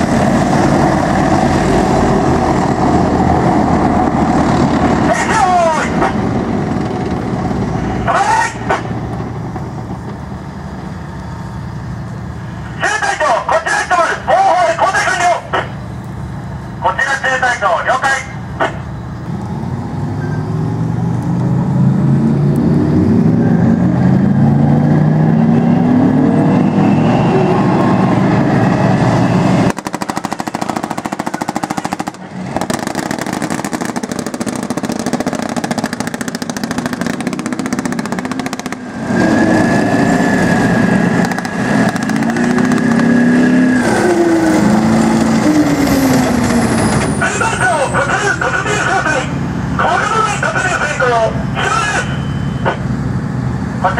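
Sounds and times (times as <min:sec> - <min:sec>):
tank diesel engines revving: 0:00.0 - 0:53.9.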